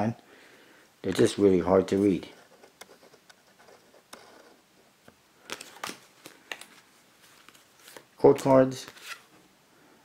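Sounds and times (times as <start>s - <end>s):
playing cards clicking: 5.4s - 9.2s
playing cards sliding: 5.4s - 9.4s.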